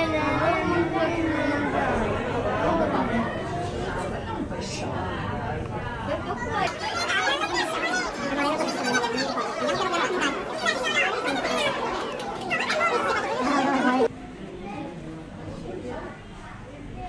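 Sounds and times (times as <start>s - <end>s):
chatter of voices: 0.0s - 17.0s.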